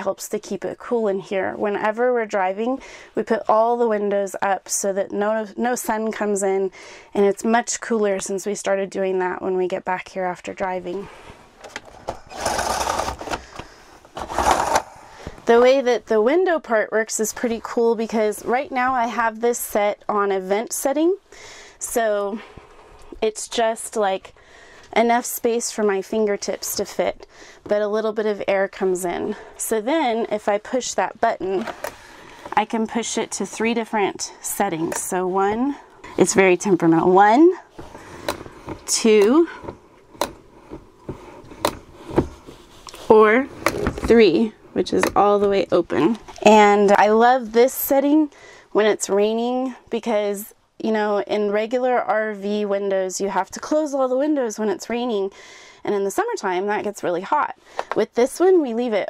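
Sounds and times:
blind sliding open rattling swish: 12.2 - 13.4, 14.1 - 15.1.

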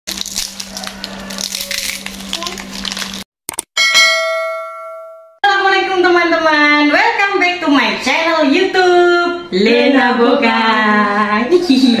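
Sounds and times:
crackers crackling and snapping: 0.1 - 3.6
bell-like chime: 3.8 - 5.4.

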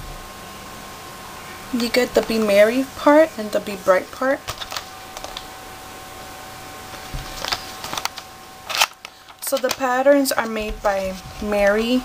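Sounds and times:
cardboard brushing scrape: 10.8 - 11.8.

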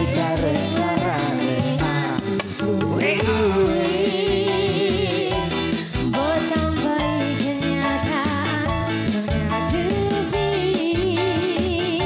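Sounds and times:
live band music: 0.0 - 12.0
person singing: 0.0 - 12.0.

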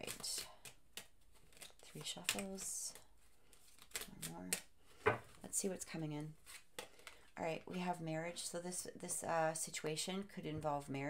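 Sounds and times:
cards being shuffled: 0.0 - 5.4, 6.4 - 7.3.

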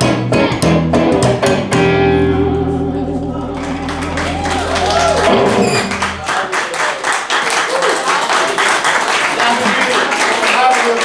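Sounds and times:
double bass and guitar chord: 0.0 - 6.3
audience applause: 3.4 - 11.0.

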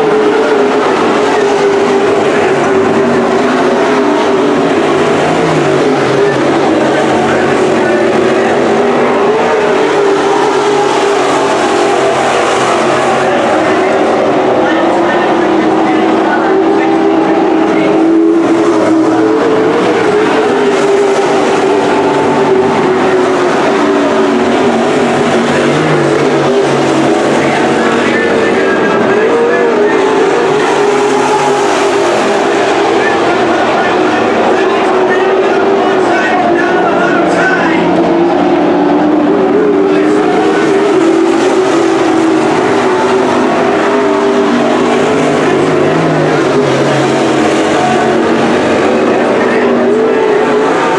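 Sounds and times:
race car engines droning: 0.0 - 50.9.

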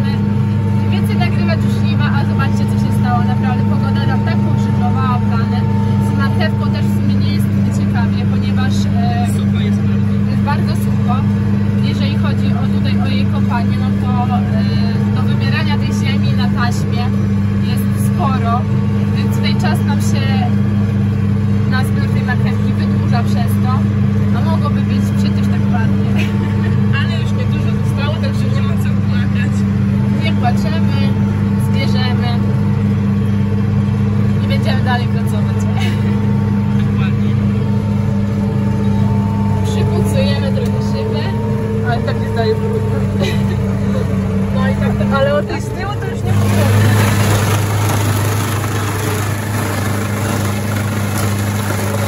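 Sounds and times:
tractor engine running: 0.0 - 52.0.

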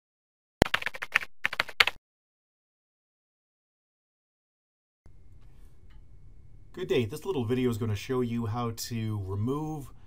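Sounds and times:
computer keyboard typing: 0.6 - 2.0.

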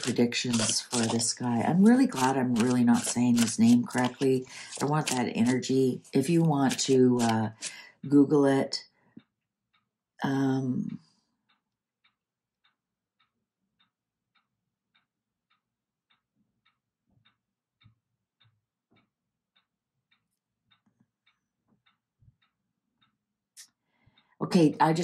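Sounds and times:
faint clock ticking: 0.0 - 25.0.

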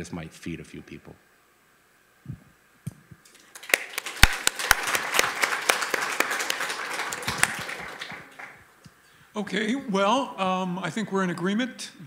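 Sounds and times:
audience applauding: 3.3 - 8.7.

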